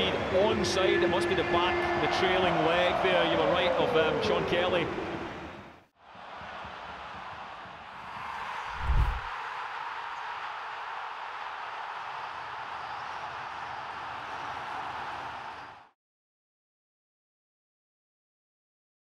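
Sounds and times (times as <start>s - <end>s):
stadium crowd noise: 0.0s - 16.0s.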